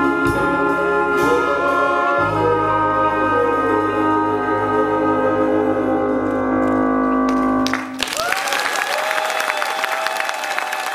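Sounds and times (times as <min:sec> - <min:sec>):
audience applause: 0:07.3 - 0:10.9.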